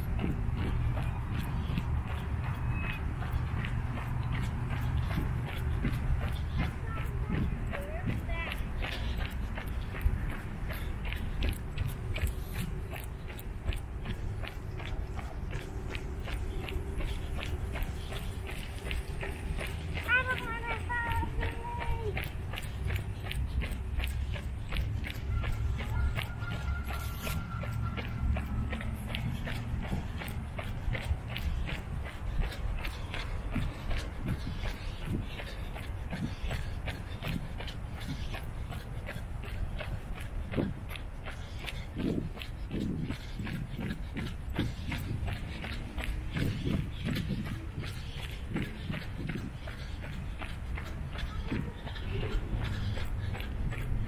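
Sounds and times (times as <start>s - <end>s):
footsteps on concrete: 0.0s - 54.0s.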